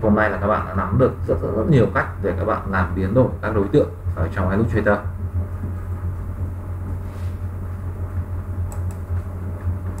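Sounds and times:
low electrical hum: 0.0s - 10.0s
computer mouse clicks: 8.7s - 9.1s.

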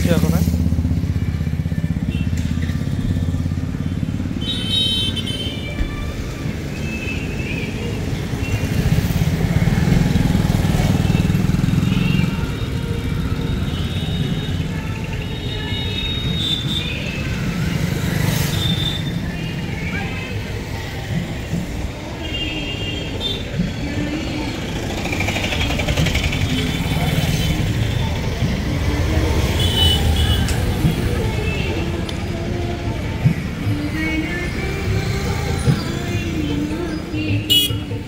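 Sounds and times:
motorbikes and rickshaws passing: 0.0s - 38.0s
vehicles running: 0.0s - 38.0s.

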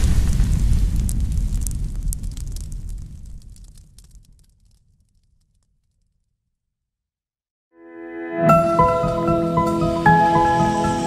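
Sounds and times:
fire crackles: 0.0s - 6.4s.

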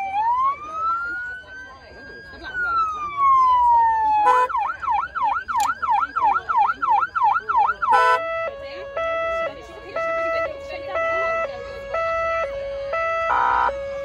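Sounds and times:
electronic siren wailing and yelping: 2.3s - 9.1s, 11.0s - 13.9s.

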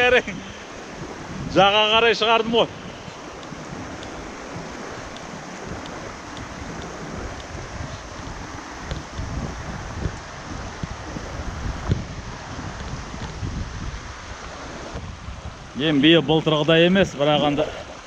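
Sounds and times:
river rushing over stones: 0.0s - 18.0s
wind buffeting microphone: 0.0s - 18.0s.

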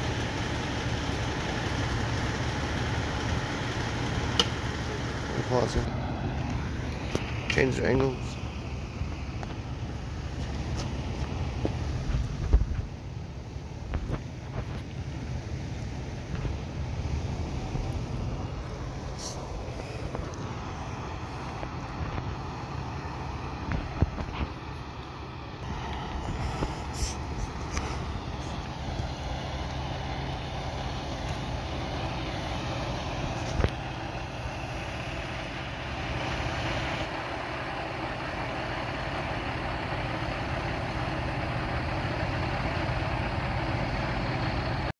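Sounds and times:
fire engine idling: 0.0s - 44.9s.

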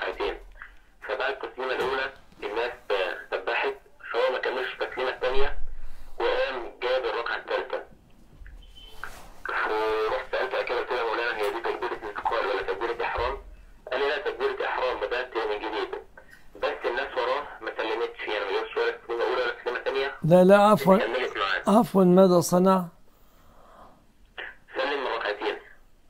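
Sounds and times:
person speaking over speakerphone: 0.0s - 5.6s, 6.2s - 7.9s, 9.4s - 23.0s, 24.4s - 25.8s.

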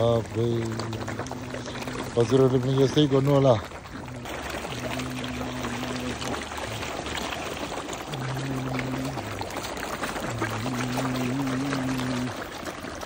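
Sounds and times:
fish splashing water: 0.0s - 13.0s.

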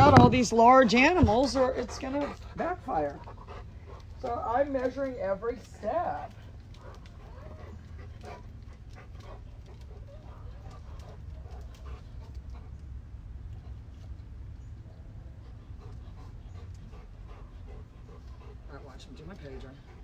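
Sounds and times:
steady low rumble: 0.0s - 20.0s.

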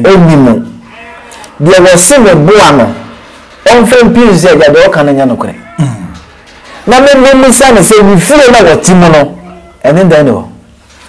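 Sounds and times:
man speaking: 0.0s - 6.2s, 6.8s - 10.6s.

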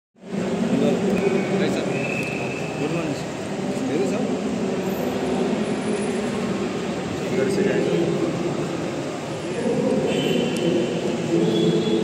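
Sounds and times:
traffic hum: 0.2s - 12.0s
people talking: 0.3s - 12.0s.

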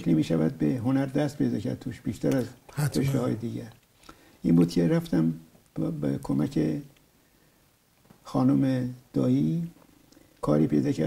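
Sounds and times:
man talking: 2.7s - 3.7s.

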